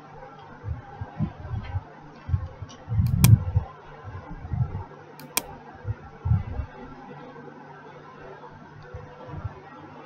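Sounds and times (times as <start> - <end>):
faint steady hum: 0.0 - 10.0
computer mouse clicks: 3.0 - 3.4, 5.2 - 5.5.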